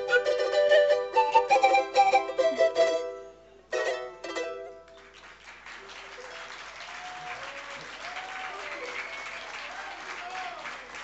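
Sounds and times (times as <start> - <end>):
audience applauding: 4.9 - 11.0.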